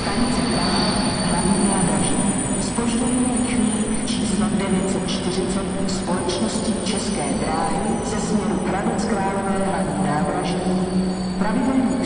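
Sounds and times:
low hum from trains: 0:00.0 - 0:12.0.

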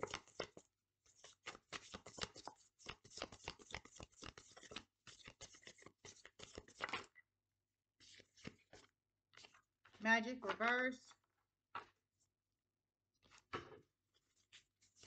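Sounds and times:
cards being shuffled: 0:01.2 - 0:07.1.

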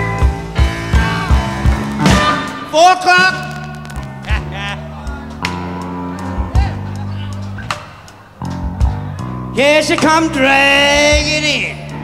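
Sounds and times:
bass line: 0:00.0 - 0:12.0
drum hits: 0:00.2 - 0:02.7
voice-like bending guitar line: 0:01.0 - 0:12.0.

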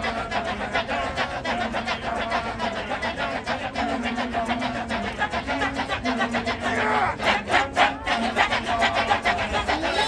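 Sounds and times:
low held sung line: 0:00.0 - 0:10.0
men chanting rhythmically: 0:00.0 - 0:10.0.

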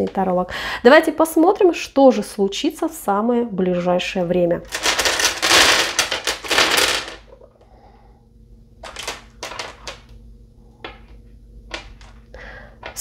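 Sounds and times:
stone runes clattering on countertop: 0:04.7 - 0:07.4
runes clicking set down: 0:04.7 - 0:07.5, 0:08.8 - 0:10.1, 0:10.8 - 0:13.0.

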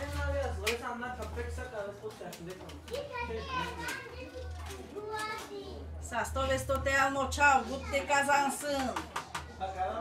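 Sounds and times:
children chattering and calling: 0:02.9 - 0:06.0.

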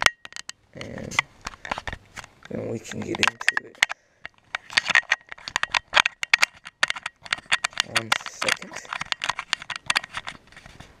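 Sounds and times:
crinkling rustling handling noise: 0:00.8 - 0:11.0.

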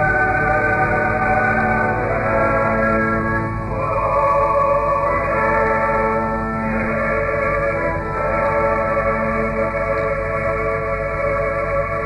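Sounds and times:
choir singing: 0:00.0 - 0:12.0
old recording hiss: 0:00.0 - 0:12.0
organ accompaniment: 0:00.0 - 0:12.0.

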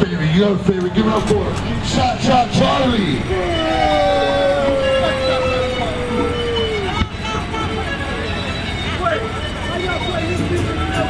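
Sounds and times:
crowd voices: 0:00.0 - 0:11.0
voice holding long falling note: 0:03.1 - 0:07.5
music: 0:06.3 - 0:11.0.

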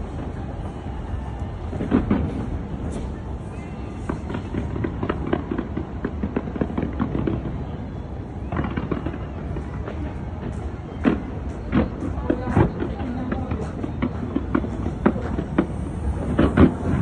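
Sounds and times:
fireworks bursting and crackling: 0:00.0 - 0:17.0
loud firework bang: 0:01.7 - 0:03.2, 0:11.0 - 0:17.0.

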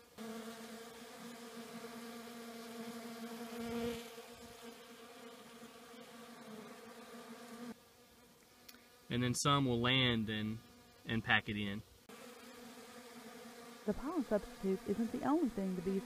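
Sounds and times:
bees buzzing: 0:00.0 - 0:16.0.

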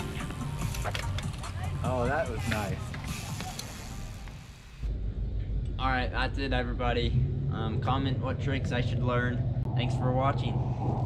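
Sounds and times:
bike rolling on concrete: 0:00.0 - 0:04.9.

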